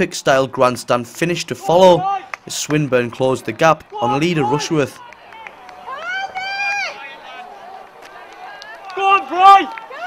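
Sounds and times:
person shouting encouragement: 0:01.6 - 0:02.3, 0:03.9 - 0:04.9, 0:08.9 - 0:09.7
light handclaps: 0:02.3 - 0:02.9.

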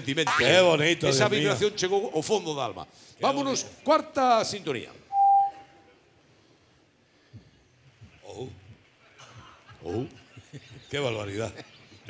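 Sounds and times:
steady beep tone: 0:05.1 - 0:05.8.

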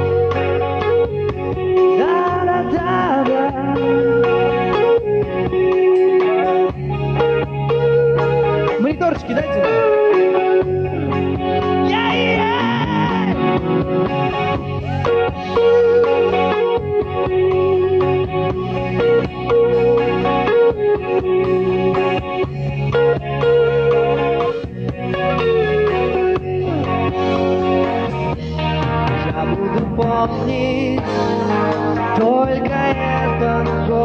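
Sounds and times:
bass guitar: 0:00.0 - 0:34.0
drums: 0:00.0 - 0:34.0
electric guitar lead melody: 0:00.0 - 0:34.0.

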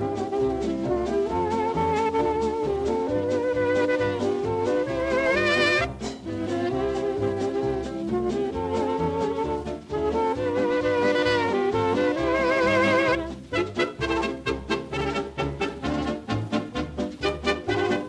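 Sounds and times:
swing band with brass and saxophones: 0:00.0 - 0:18.0.

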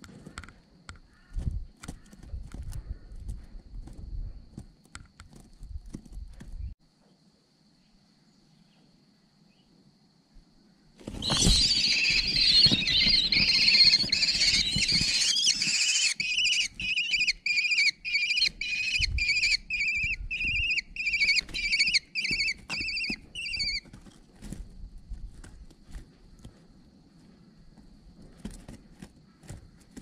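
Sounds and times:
wing flaps: 0:11.0 - 0:17.0
birds scuffling: 0:11.0 - 0:30.0
kestrel chicks screeching: 0:11.1 - 0:23.9.

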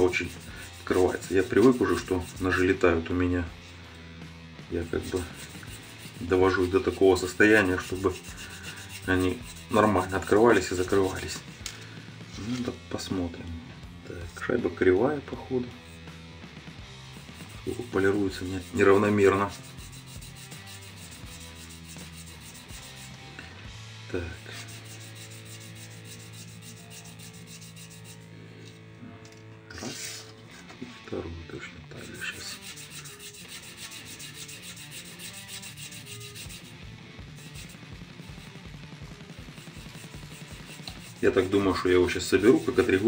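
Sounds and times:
metal washer rubbing on stone: 0:00.0 - 0:03.8, 0:04.7 - 0:11.8, 0:15.6 - 0:16.2, 0:17.0 - 0:23.4, 0:24.3 - 0:28.8, 0:32.0 - 0:43.0.

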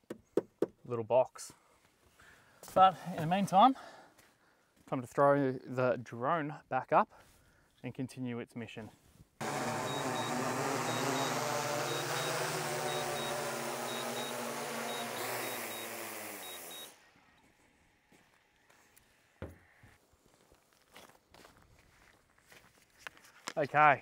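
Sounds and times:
drone propellers whirring: 0:09.4 - 0:17.0
high beeps: 0:09.9 - 0:16.9
faint footsteps: 0:17.4 - 0:23.6.

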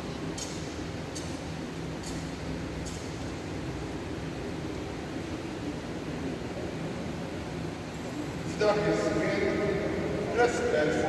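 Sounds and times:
fan humming: 0:00.0 - 0:11.0.

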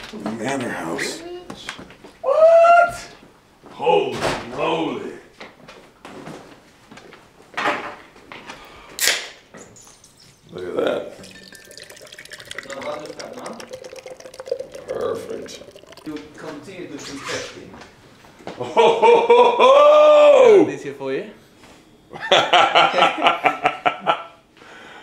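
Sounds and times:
can opening with hiss: 0:09.0 - 0:09.4
beer pouring into glass: 0:10.1 - 0:17.0.

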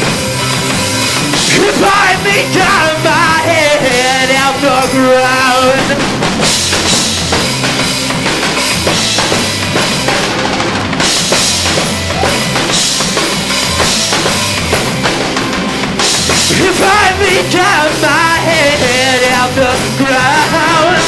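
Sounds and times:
drum kit: 0:00.0 - 0:21.0
live rock band playing: 0:00.0 - 0:21.0.

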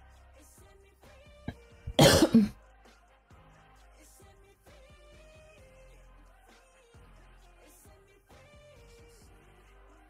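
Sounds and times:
faint pop music: 0:00.0 - 0:10.0
woman coughing: 0:01.9 - 0:02.5.

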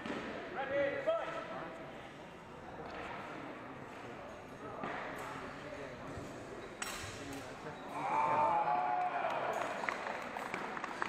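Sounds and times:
echoing crowd chatter: 0:00.0 - 0:11.0.

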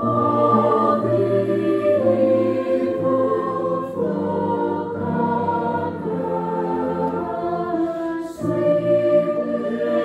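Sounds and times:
mixed choir singing chords: 0:00.0 - 0:10.0.

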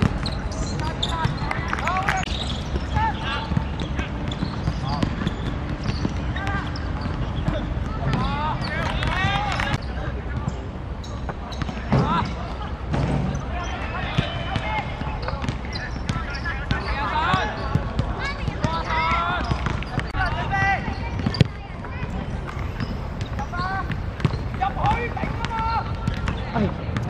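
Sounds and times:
players shouting: 0:00.0 - 0:27.0.

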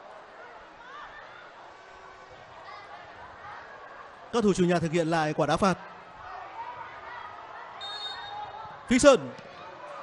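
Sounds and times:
stadium crowd noise: 0:00.0 - 0:10.0
referee whistle blast: 0:07.8 - 0:08.5.

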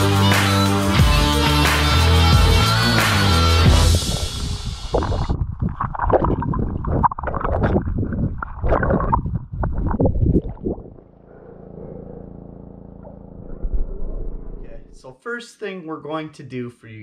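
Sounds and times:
low underwater hum: 0:03.8 - 0:15.0
underwater bubbling and sloshing: 0:04.2 - 0:11.4.

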